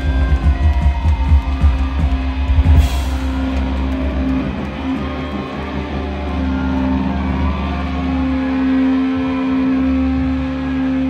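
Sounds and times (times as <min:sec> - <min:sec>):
electric guitars and bass drone: 0:00.0 - 0:11.0.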